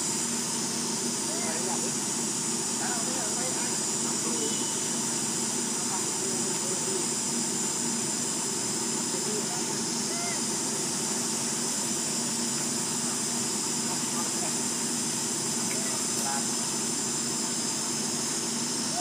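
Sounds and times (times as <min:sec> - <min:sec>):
high-pitched hiss: 0:00.0 - 0:07.1.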